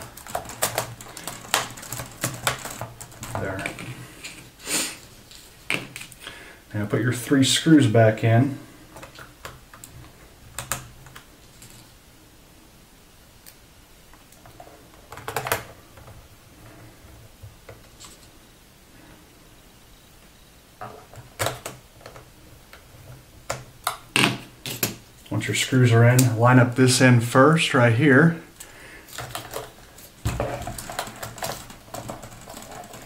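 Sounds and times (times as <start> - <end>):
hands pressing laptop keyboard: 0.0 - 4.4, 9.0 - 11.3, 14.4 - 16.2.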